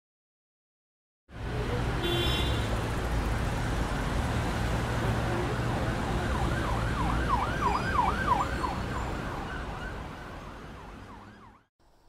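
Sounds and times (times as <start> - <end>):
traffic rumble: 1.3 - 12.0
siren yelping: 6.0 - 11.7.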